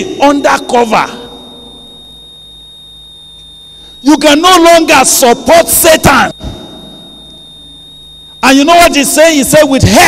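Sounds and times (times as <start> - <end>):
low hum: 0.0 - 9.8
steady high-pitched tone: 0.0 - 10.0.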